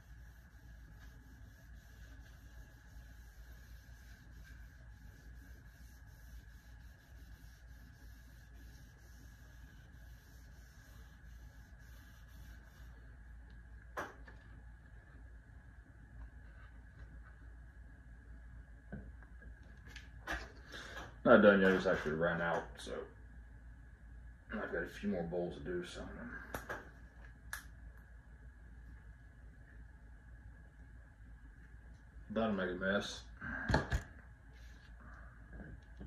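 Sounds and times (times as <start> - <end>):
faint high hum: 0.0 - 36.0.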